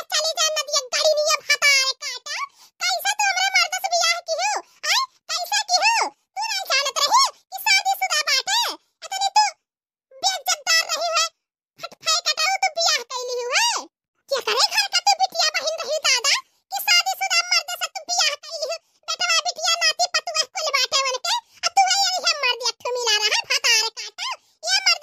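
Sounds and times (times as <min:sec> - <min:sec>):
squeaky sped-up cartoon voice: 0:00.0 - 0:25.0.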